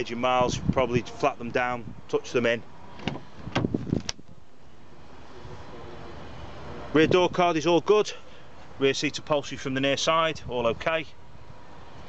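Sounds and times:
car door handle and latch clicks: 0:03.0 - 0:04.2.

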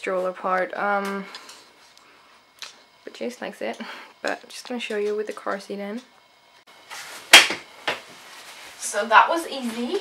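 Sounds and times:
soft rustle: 0:08.1 - 0:10.0.

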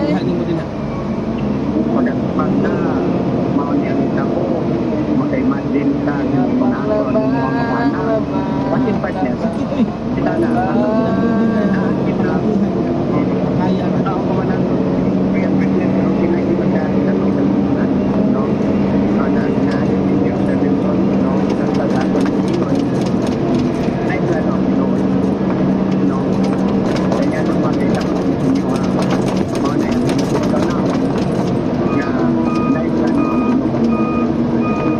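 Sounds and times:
diesel engine droning: 0:00.0 - 0:34.9.

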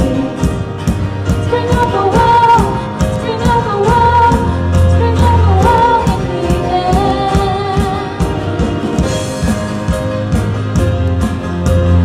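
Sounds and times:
piano and keyboard: 0:00.0 - 0:12.0
woman singing: 0:01.4 - 0:09.2.

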